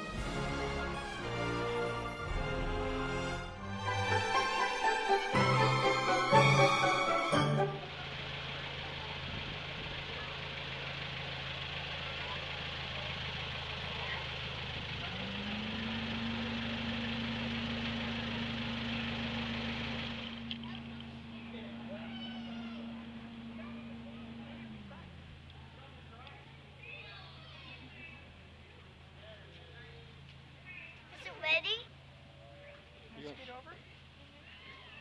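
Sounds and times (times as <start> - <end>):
second low drone: 0.0 - 8.5, 15.3 - 26.0
locomotive engine idling hum: 0.0 - 35.0.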